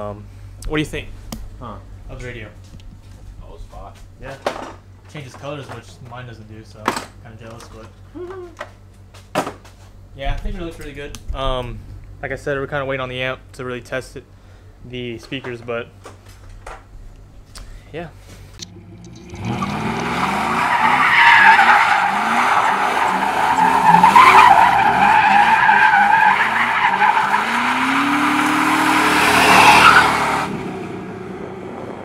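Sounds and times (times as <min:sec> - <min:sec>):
truck engine revving hard: 0:18.8 - 0:32.0
tyres squealing: 0:19.4 - 0:30.3.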